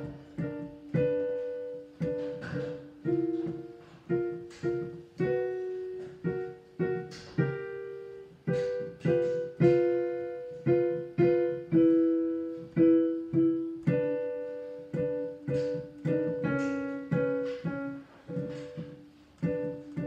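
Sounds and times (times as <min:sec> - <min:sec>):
digital piano arpeggio: 0:00.0 - 0:20.0.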